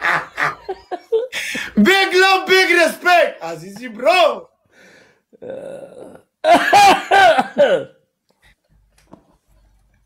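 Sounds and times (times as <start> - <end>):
bursts of laughter: 0.0 - 1.7
man's throaty vocal sound: 5.3 - 6.5.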